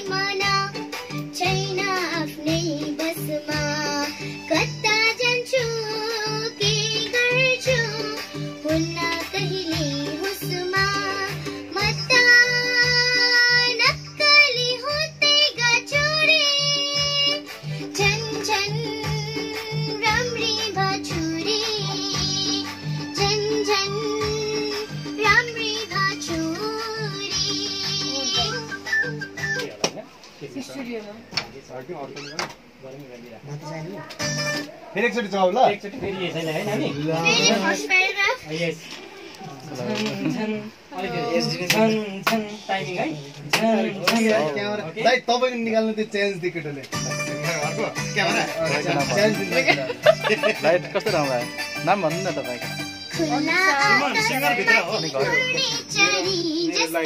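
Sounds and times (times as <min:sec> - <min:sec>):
girl singing: 0:00.0 - 0:29.2, 0:53.1 - 0:57.0
music playing: 0:00.0 - 0:29.9, 0:33.7 - 0:35.0, 0:46.6 - 0:57.0
plucked strings backing track: 0:00.0 - 0:30.0, 0:33.9 - 0:38.3, 0:46.6 - 0:57.0
people talking: 0:47.4 - 0:52.6.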